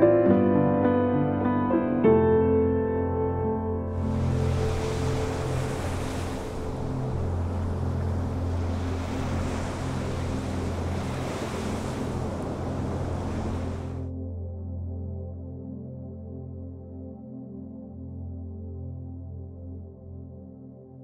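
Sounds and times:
soft ambient music: 0.0 - 21.0
surf breaking on rocks: 4.0 - 14.0.

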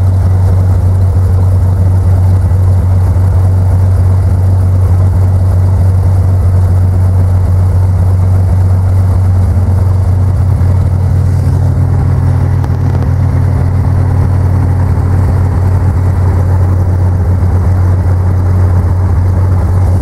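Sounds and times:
low engine drone: 0.0 - 20.0.

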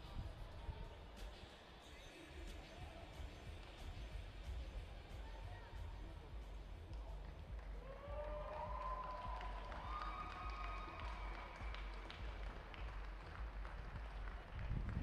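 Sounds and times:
low stadium rumble: 0.0 - 15.0.

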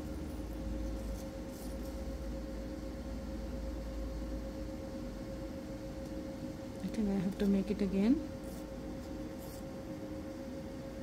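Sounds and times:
steady low hum: 0.0 - 11.0
palette knife scraping: 0.8 - 2.0, 8.4 - 9.7.

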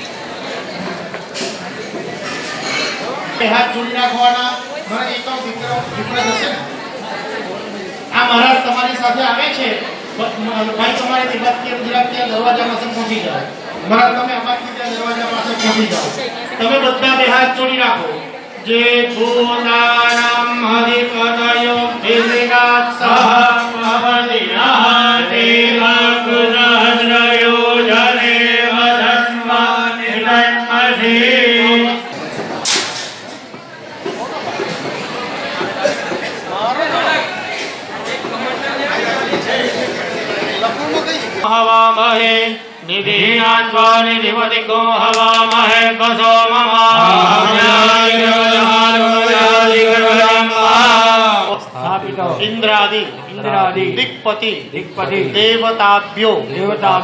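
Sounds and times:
men chanting a mantra: 18.6 - 32.1, 41.4 - 57.0
voices chanting a mantra: 41.4 - 51.6.

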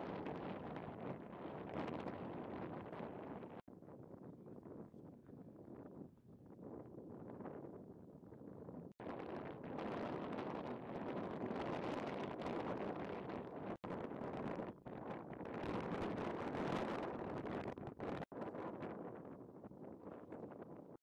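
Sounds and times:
wind on microphone: 0.0 - 21.0.

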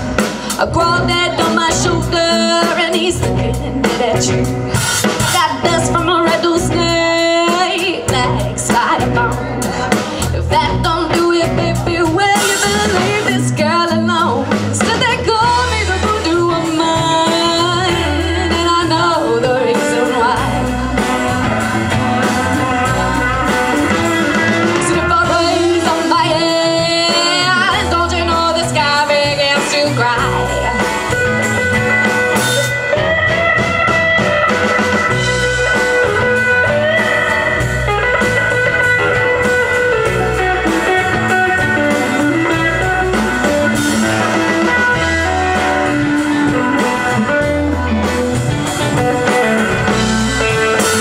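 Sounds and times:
drum kit steady beat: 0.0 - 51.0
electric guitars: 0.0 - 51.0
woman singing lead: 0.0 - 51.0.

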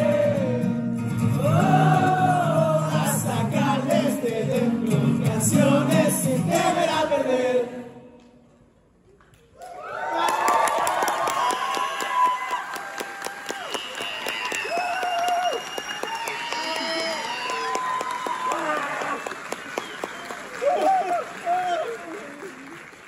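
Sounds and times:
audience clapping and cheering: 9.2 - 23.0.

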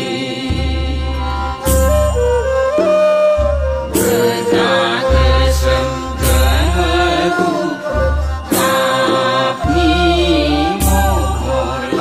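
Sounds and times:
chanted vocal line: 0.0 - 12.0.

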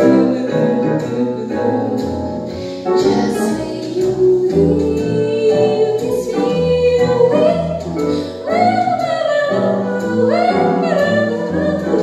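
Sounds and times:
jazz backing track: 0.0 - 12.0.

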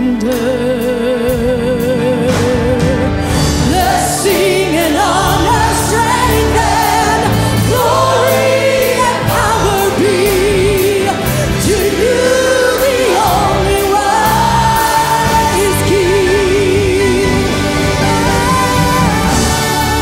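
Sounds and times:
bass guitar: 0.0 - 20.0
woman singing lead with vibrato: 0.0 - 20.0
drums with cymbals: 1.3 - 20.0
backing singers: 2.3 - 20.0.

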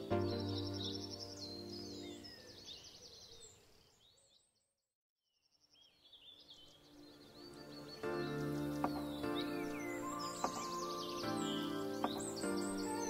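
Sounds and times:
background music: 0.0 - 2.4, 6.6 - 13.0
birds chirping: 0.0 - 4.7, 5.6 - 13.0.

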